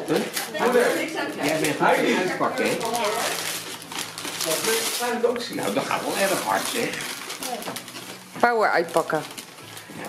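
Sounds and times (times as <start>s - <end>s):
wrapping paper tearing and crumpling: 0.0s - 10.0s.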